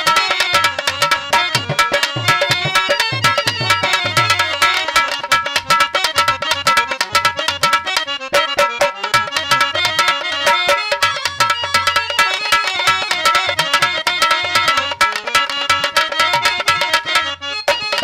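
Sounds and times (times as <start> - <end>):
harmonium chords: 0.0 - 18.0.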